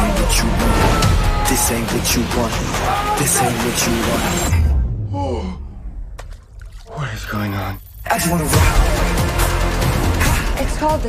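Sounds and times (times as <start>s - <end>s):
steady low rumble: 4.5s - 7.3s.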